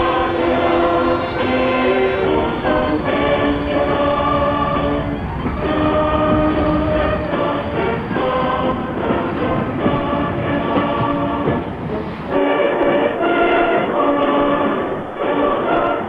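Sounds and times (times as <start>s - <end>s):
choir singing held chords: 0.0s - 16.0s
low rumble: 0.0s - 16.0s.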